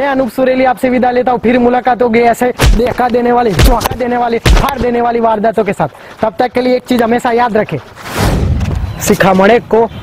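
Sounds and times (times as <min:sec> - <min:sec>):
man's voice: 0:00.0 - 0:07.9.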